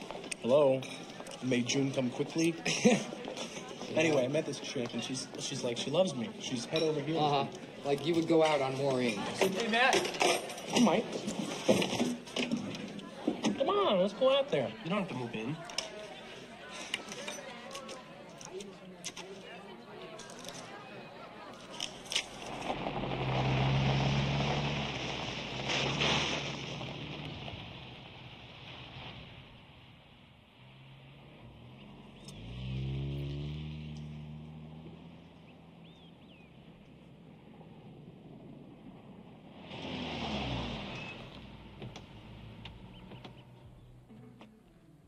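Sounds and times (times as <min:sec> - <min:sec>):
car driving by: 0:22.2 - 0:44.0.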